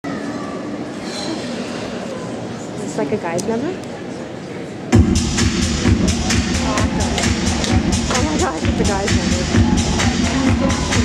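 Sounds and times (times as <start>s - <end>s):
crowd murmur in arena: 0.0s - 11.0s.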